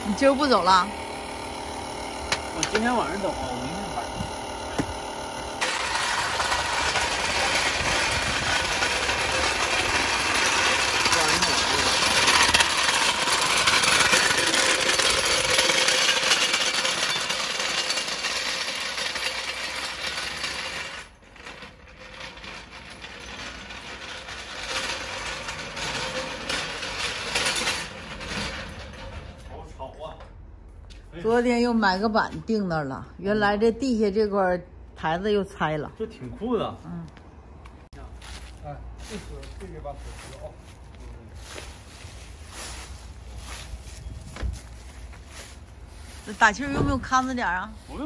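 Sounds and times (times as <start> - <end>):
floor jack wheels rattling on asphalt: 0.0 - 30.3.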